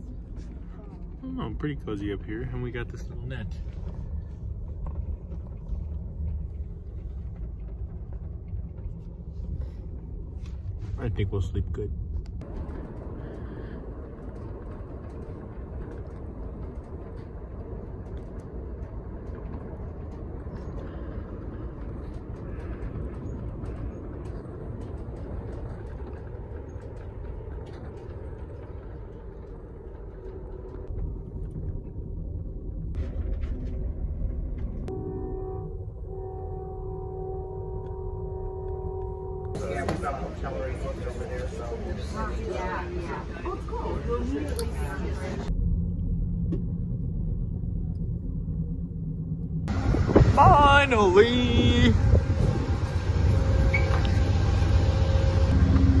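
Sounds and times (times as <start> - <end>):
train rumbling and rattling: 0.0 - 56.0.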